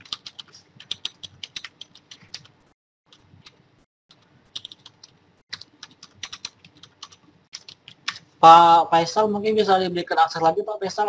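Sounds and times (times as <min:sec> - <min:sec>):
keyboard typing: 0:00.0 - 0:08.3.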